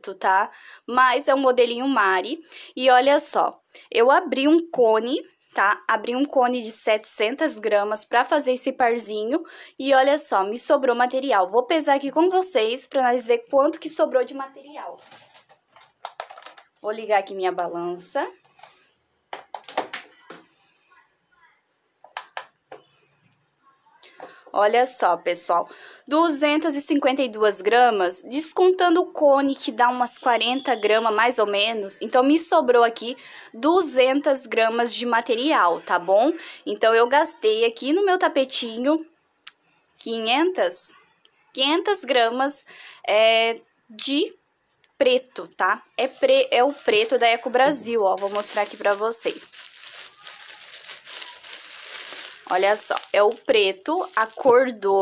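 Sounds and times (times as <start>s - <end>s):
plastic wrapper crinkling: 15.0s - 16.8s, 46.0s - 55.0s.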